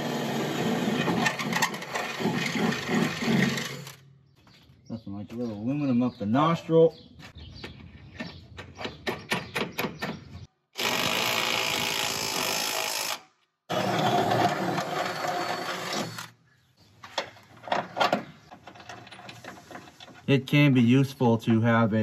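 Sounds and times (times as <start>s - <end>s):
cordless drill boring through metal: 0.0s - 4.0s, 10.8s - 16.3s.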